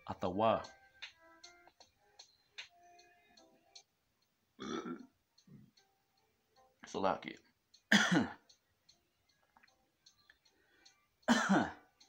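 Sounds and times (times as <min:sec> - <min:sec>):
man burping: 0:04.6 - 0:05.1, 0:07.9 - 0:08.4, 0:11.3 - 0:11.8
man clearing throat coughing: 0:04.6 - 0:05.1, 0:07.9 - 0:08.4, 0:11.3 - 0:11.8.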